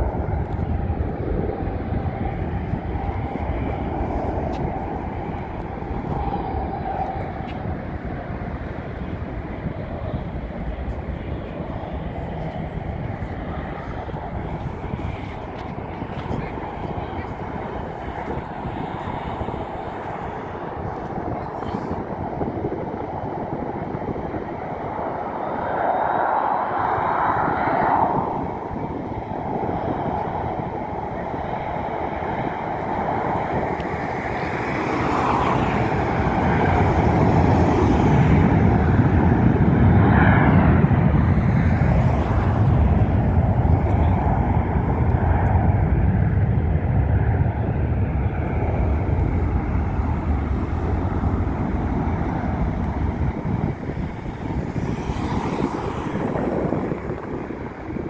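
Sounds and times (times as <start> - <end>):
car road noise: 0.0 - 58.0
jet airliner engines: 0.0 - 58.0.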